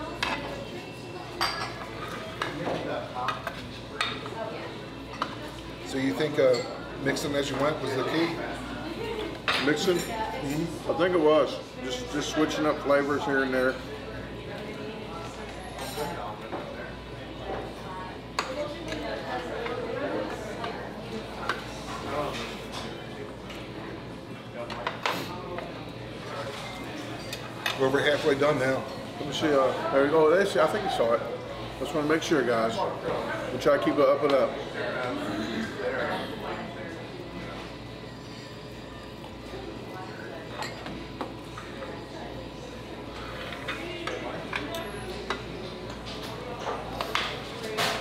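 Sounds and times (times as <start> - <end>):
murmur of voices: 0.0 - 48.0.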